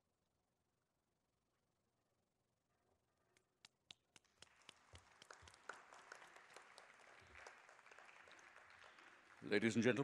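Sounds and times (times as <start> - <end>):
audience applause: 4.2 - 10.0.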